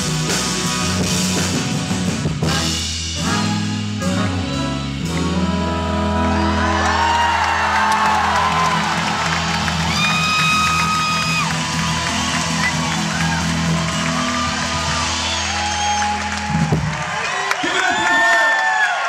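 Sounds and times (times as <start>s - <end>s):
live band holding chord: 0.0s - 17.1s
crowd cheering and whooping: 6.2s - 19.0s.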